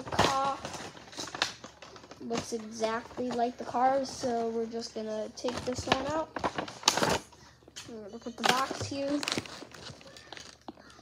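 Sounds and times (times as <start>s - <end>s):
plastic blister tray crackling: 0.0s - 11.0s.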